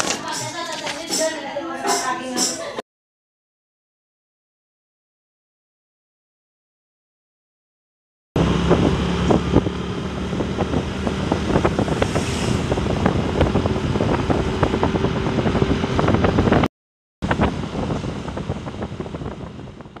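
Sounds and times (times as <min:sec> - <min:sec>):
low road hum: 0:08.4 - 0:20.0
wind buffeting microphone: 0:08.4 - 0:20.0.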